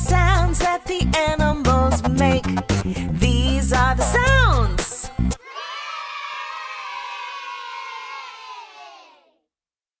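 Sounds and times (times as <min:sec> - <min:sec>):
children cheering: 0:05.4 - 0:09.4.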